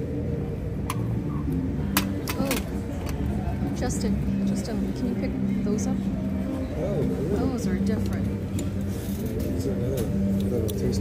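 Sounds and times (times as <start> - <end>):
crowd chatter: 0.0 - 11.0
low street murmur: 0.0 - 11.0.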